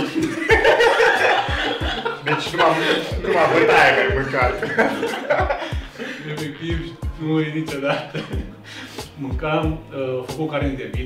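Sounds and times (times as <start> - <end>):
men laughing: 0.0 - 9.0
men speaking: 0.0 - 11.0.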